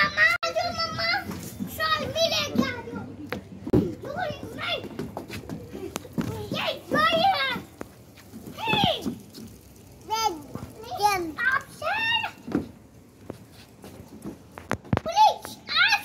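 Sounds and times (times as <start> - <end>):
children shouting: 0.0 - 3.1, 15.1 - 16.0.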